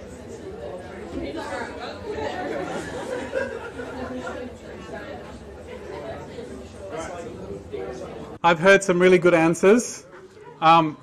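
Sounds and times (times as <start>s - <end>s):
overlapping chatter of people: 0.0s - 11.0s.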